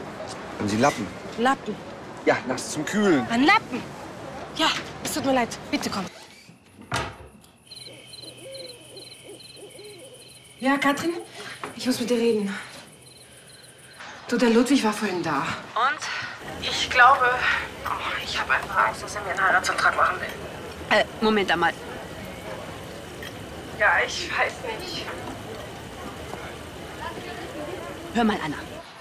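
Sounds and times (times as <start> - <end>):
crickets chirping: 5.2 - 15.2, 16.4 - 28.8
background ambience: 7.4 - 29.0
owl hooting: 7.7 - 11.6
woman's voice: 10.6 - 12.8.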